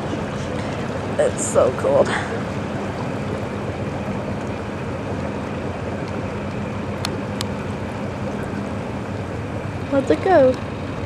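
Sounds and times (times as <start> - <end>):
boat engine idling: 0.0 - 11.0
water noise: 0.0 - 11.0.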